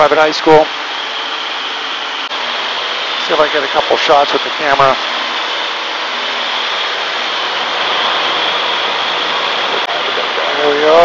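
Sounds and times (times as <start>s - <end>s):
airplane engine and propeller drone: 0.0s - 11.0s.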